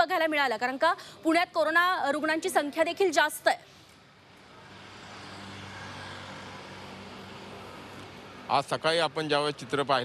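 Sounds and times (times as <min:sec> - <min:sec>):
traffic noise: 0:00.0 - 0:10.0
scooters and motorcycles passing: 0:04.0 - 0:10.0.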